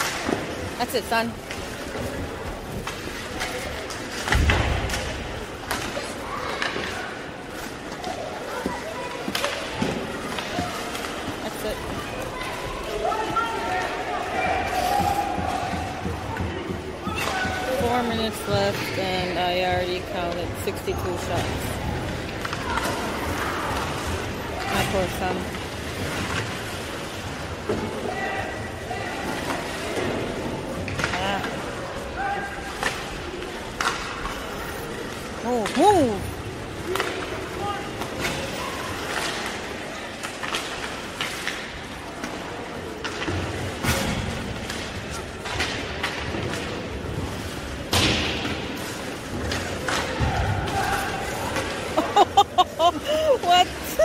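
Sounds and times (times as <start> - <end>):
pucks and sticks hitting boards: 0.0 - 14.0, 14.6 - 28.3, 32.7 - 34.6, 36.8 - 51.9.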